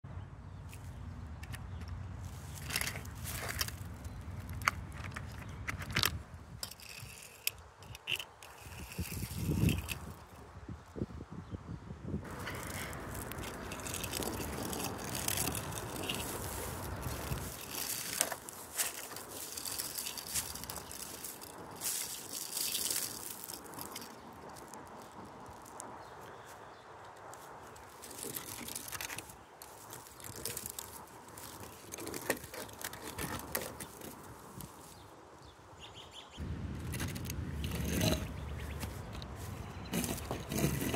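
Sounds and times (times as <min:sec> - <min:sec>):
toy cars rolling on wood: 0:01.4 - 0:10.4, 0:12.3 - 0:26.0, 0:27.7 - 0:34.7, 0:36.8 - 0:40.9
toy cars clicking and rattling: 0:02.5 - 0:10.3, 0:12.3 - 0:25.8, 0:27.8 - 0:34.3, 0:36.8 - 0:39.2, 0:39.9 - 0:40.9.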